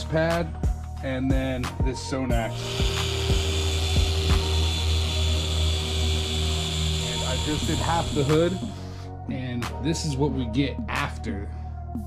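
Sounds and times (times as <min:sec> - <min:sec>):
orbital polisher motor hum: 0:02.5 - 0:08.8.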